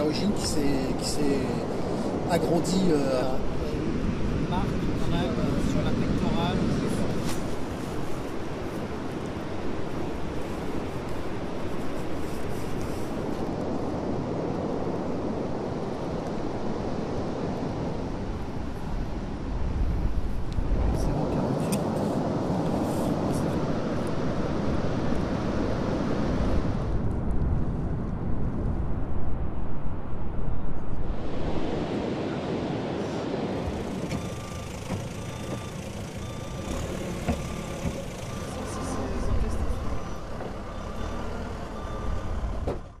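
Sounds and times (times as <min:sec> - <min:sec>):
surf on beach: 0:00.0 - 0:43.0
vehicle noise: 0:00.0 - 0:43.0
wind rumbling on microphone: 0:00.0 - 0:43.0
short electronic beeps: 0:34.0 - 0:42.6.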